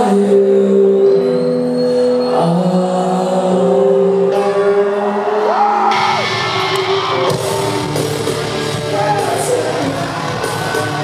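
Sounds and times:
electric guitar held chords: 3.6s - 11.0s
live metal band: 4.3s - 11.0s.

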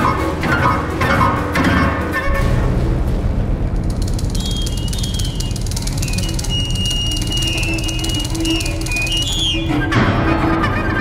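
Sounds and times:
chamber ensemble playing: 4.1s - 11.0s.

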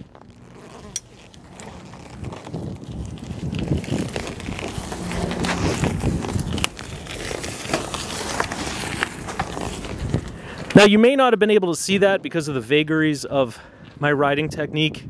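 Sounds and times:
bicycle clicks and rattles: 0.0s - 10.8s
bicycle rolling over pavement: 0.0s - 11.5s.

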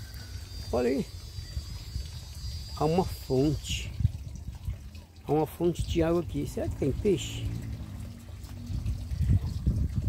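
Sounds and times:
running water: 0.0s - 10.0s
low rumble: 6.7s - 10.0s.

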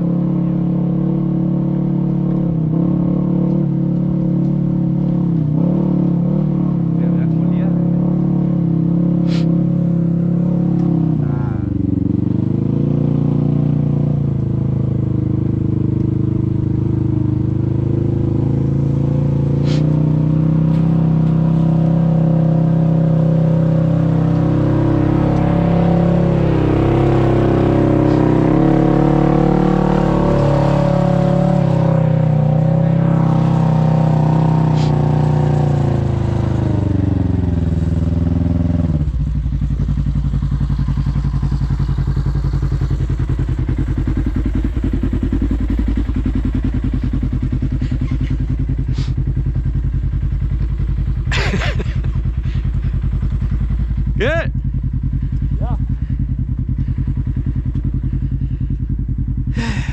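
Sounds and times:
utility vehicle engine revving: 0.0s - 59.9s
engine idling: 39.0s - 59.9s.

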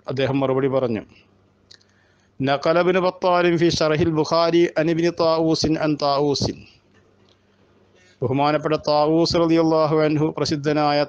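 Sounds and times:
man speaking: 0.0s - 1.2s, 2.4s - 6.8s, 8.2s - 11.0s.

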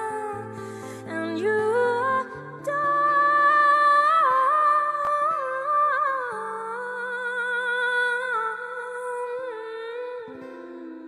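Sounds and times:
woman singing wordless melody: 0.0s - 11.0s.

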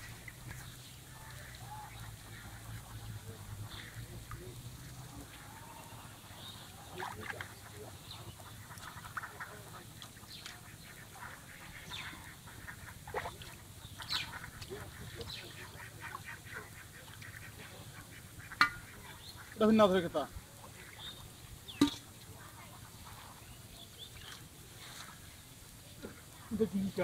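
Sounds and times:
faint ducks quacking: 0.0s - 27.0s.

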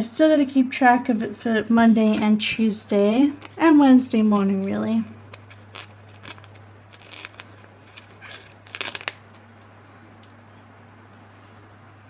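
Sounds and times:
stickers clicking and crinkling: 5.3s - 10.4s.

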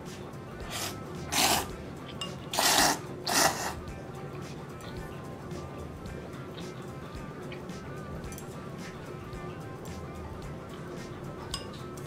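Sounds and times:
background music: 0.0s - 12.0s
person slurping noodles: 0.6s - 1.7s, 2.5s - 3.8s.

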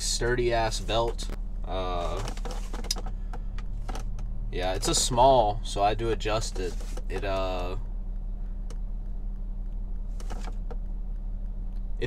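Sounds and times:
car hum from inside cabin: 0.0s - 12.0s.

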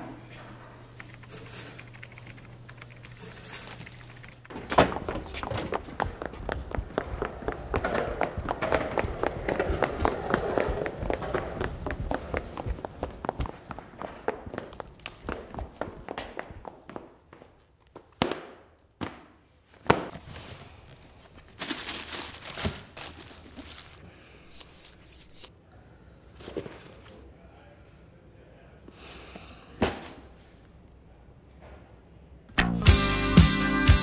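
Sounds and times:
boots clicking on concrete floor: 4.5s - 18.6s.

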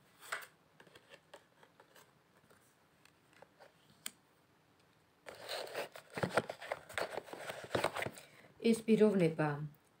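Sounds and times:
deck of cards shuffling: 5.3s - 8.2s.

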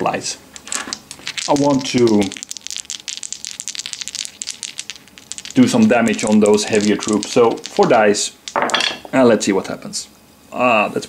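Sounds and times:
wooden dice rattling in hand: 0.6s - 8.9s.

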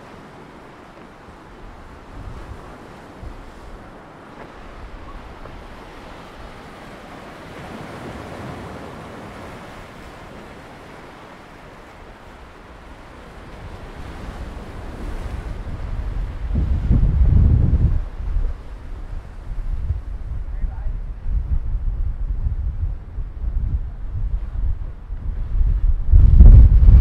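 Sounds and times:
sea waves breaking on rocks: 0.0s - 20.5s
wind buffeting microphone: 0.0s - 27.0s.

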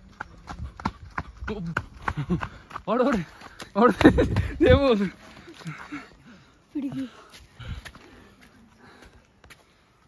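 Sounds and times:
running footsteps on concrete: 0.0s - 10.0s.

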